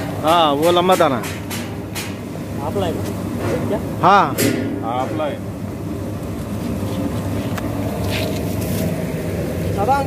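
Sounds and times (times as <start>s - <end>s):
roasting machine running: 0.0s - 10.0s.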